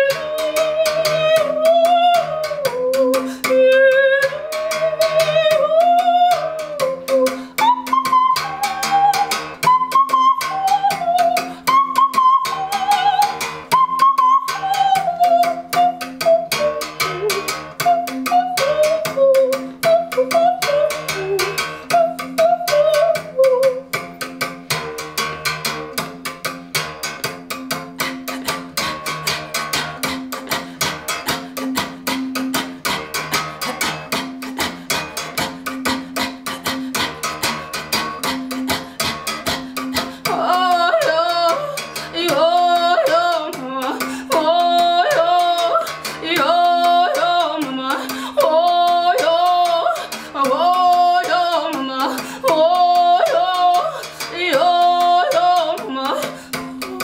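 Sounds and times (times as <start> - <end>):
woman singing: 0.0 - 57.0.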